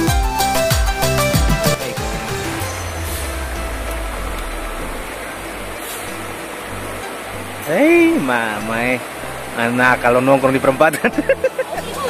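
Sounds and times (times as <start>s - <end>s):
music: 0.0s - 12.0s
river flowing over rapids: 1.8s - 12.0s
low rumble: 2.0s - 7.6s
man talking: 7.6s - 9.0s, 9.6s - 11.4s.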